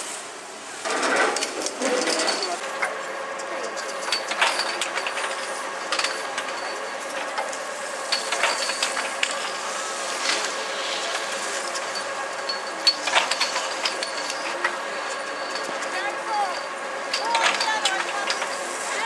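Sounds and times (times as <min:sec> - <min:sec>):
chairlift machinery humming: 0:00.0 - 0:19.0
mechanical clacks and rattles: 0:00.8 - 0:19.0.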